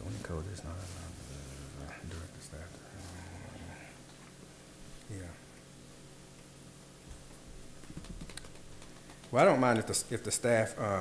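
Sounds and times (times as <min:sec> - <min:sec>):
low room hum: 0:00.0 - 0:11.0
faint clicks and taps: 0:07.1 - 0:09.9.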